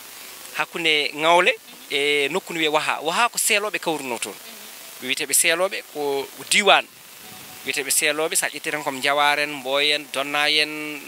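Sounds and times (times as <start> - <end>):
faint steady background noise: 0.0 - 11.0
man talking into microphone: 0.6 - 4.4, 5.0 - 6.9, 7.6 - 11.0.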